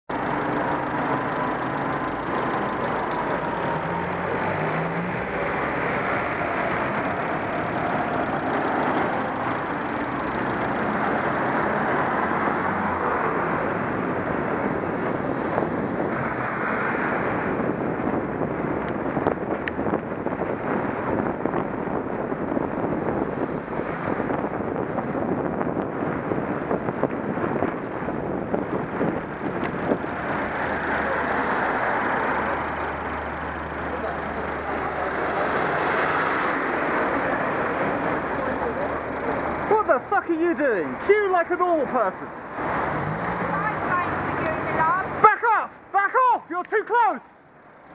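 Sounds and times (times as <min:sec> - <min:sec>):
car engines in slow traffic: 0:00.1 - 0:45.2
road traffic rush: 0:00.1 - 0:47.9
wind rushing: 0:03.6 - 0:33.4.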